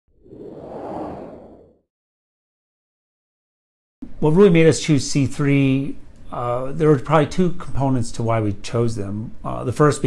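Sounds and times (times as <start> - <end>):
whoosh sound effect: 0.1 - 1.8.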